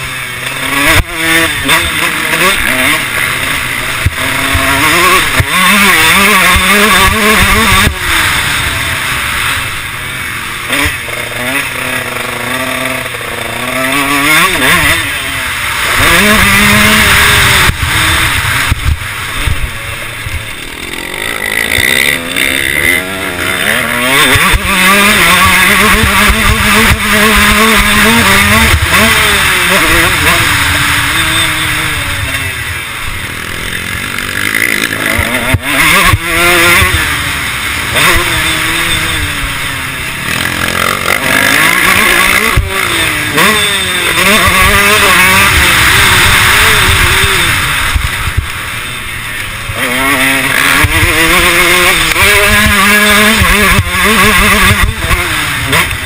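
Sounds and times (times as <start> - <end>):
motocross engine revving: 0.0 - 56.0.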